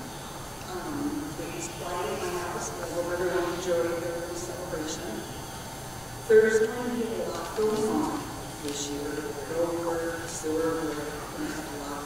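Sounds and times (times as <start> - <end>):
woman reading aloud: 0.6 - 5.3, 6.3 - 12.0.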